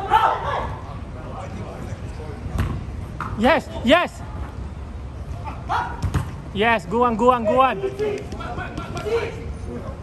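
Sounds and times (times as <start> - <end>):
ball kicked thud: 6.0 - 6.4.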